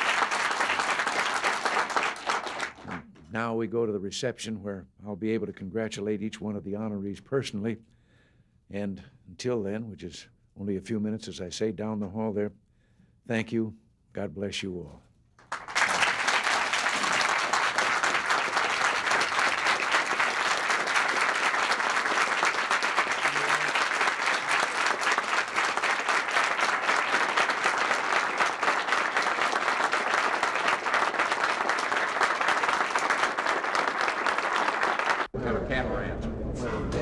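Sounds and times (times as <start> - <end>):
audience applauding: 0.0 - 3.1, 15.4 - 35.3.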